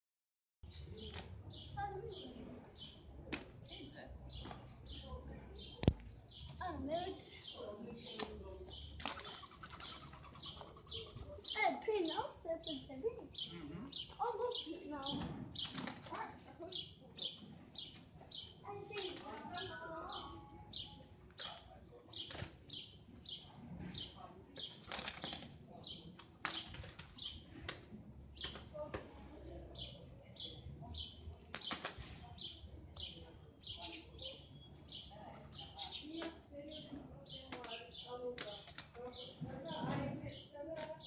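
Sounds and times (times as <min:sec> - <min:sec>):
wings flapping: 0:09.0 - 0:10.8, 0:15.5 - 0:16.2, 0:18.9 - 0:19.7, 0:24.7 - 0:25.6
pigeon wings flapping: 0:24.7 - 0:25.6.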